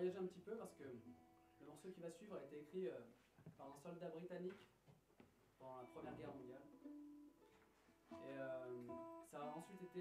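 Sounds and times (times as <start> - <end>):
acoustic guitar played softly: 0.0 - 1.9, 5.7 - 10.0.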